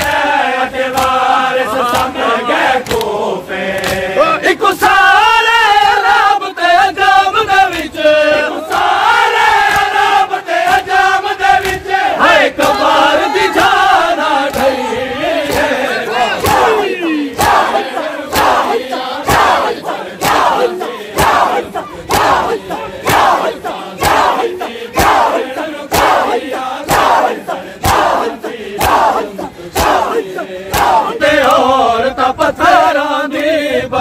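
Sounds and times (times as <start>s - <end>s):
men slapping chests in unison: 0.0s - 6.4s, 7.0s - 31.9s
crowd shouting a chant: 0.0s - 34.0s
person singing a recitation: 0.0s - 34.0s.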